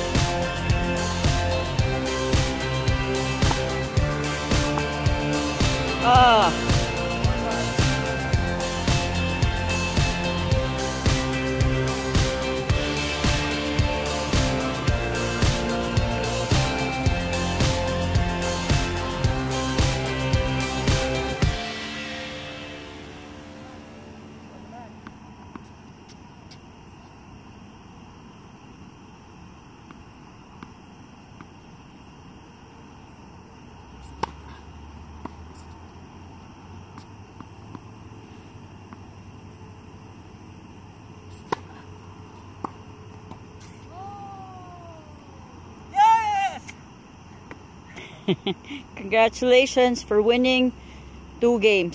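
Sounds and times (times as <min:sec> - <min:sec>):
tennis ball struck by rackets: 0:03.4 - 0:03.7, 0:04.5 - 0:05.0, 0:34.1 - 0:34.6, 0:41.3 - 0:44.0
person calling out: 0:05.9 - 0:06.7, 0:43.9 - 0:46.7
faint high hum: 0:22.0 - 0:35.7.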